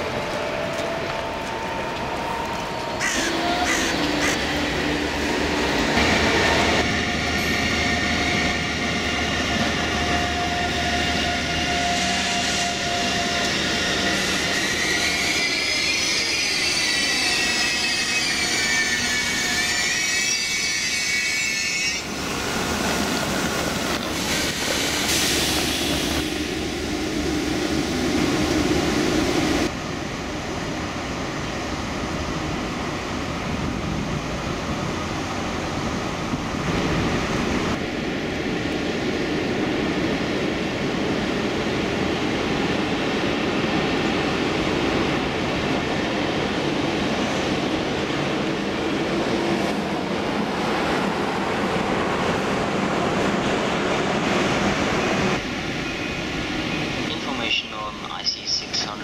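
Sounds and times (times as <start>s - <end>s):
train rolling in and braking: 0.0s - 59.0s
wheel and brake squeal: 7.4s - 22.1s.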